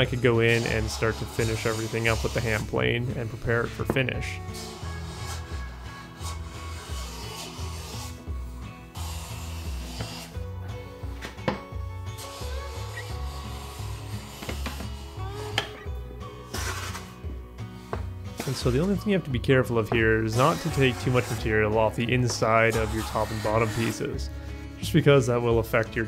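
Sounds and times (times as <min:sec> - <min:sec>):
hand plane shaving wood: 0:00.0 - 0:08.2, 0:08.9 - 0:10.4, 0:18.4 - 0:25.4
background music: 0:00.0 - 0:26.0.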